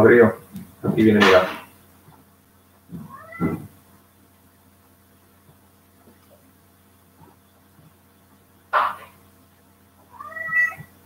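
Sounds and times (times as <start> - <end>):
cat meowing: 3.0 - 3.6, 10.1 - 10.9.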